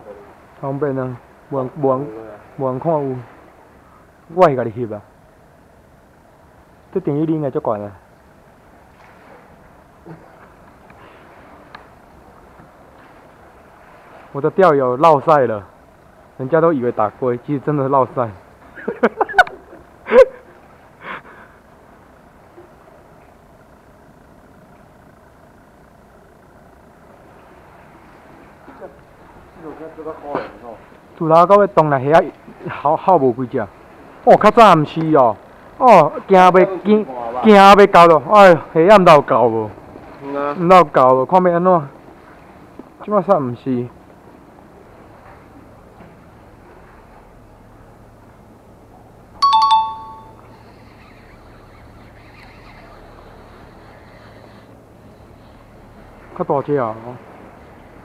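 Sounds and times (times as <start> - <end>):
low rushing sea air: 0.0 - 58.0
man laughing: 18.7 - 21.6
two-tone metallic chime: 49.4 - 50.4.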